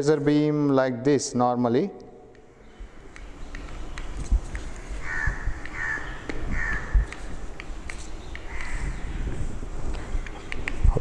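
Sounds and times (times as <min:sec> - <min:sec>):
harsh bird calls: 0:02.5 - 0:10.8.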